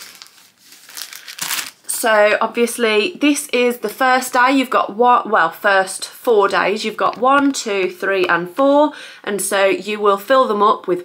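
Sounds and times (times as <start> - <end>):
plastic envelope crinkling: 0.0 - 1.9.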